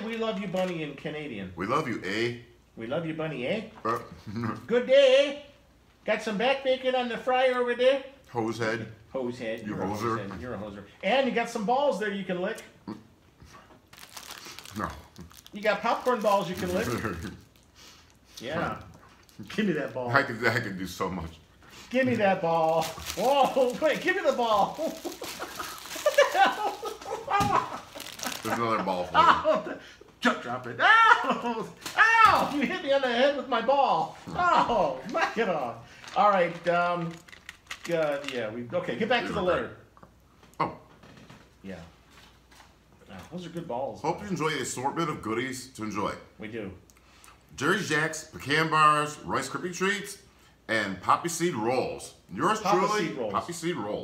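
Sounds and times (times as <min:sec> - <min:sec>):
plastic wrapping crinkling: 0:13.8 - 0:20.4, 0:22.2 - 0:29.1, 0:36.0 - 0:38.4
paper handling noise: 0:13.9 - 0:17.4, 0:22.2 - 0:29.1.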